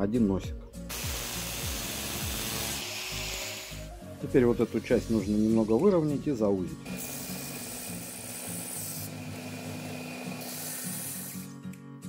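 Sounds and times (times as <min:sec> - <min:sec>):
background music: 0:00.0 - 0:12.0
cutting disc grinding steel: 0:00.9 - 0:05.7, 0:06.8 - 0:11.5.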